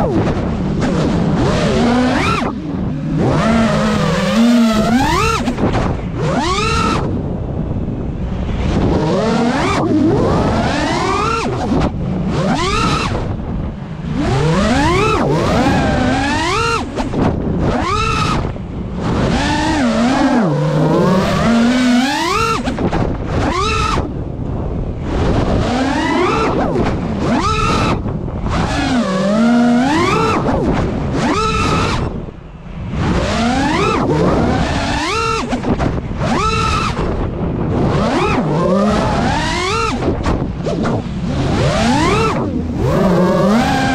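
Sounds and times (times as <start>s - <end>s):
drone motors whining: 0.0s - 43.9s
steady rush of noise: 0.0s - 43.9s.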